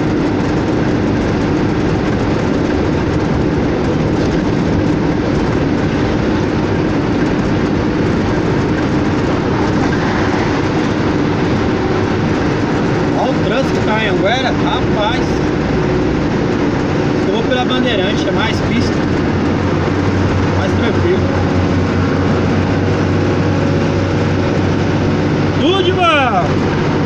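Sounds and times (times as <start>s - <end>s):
truck engine drone and road noise: 0.0s - 27.0s.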